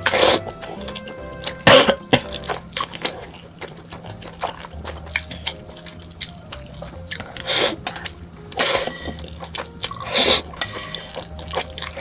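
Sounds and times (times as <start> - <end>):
quiet background music: 0.0 - 12.0
loud noodle slurps: 9.9 - 11.2.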